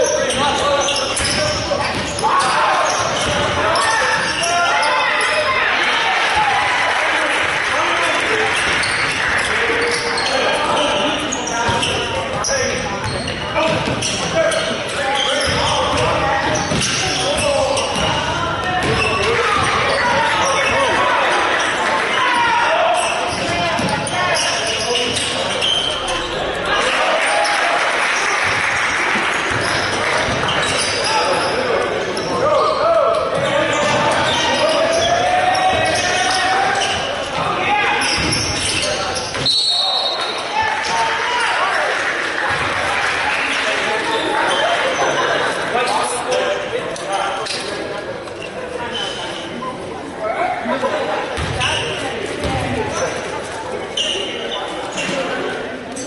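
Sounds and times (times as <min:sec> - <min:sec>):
echoing shouting and chatter: 0:00.0 - 0:56.0
referee's whistle: 0:39.4 - 0:40.4.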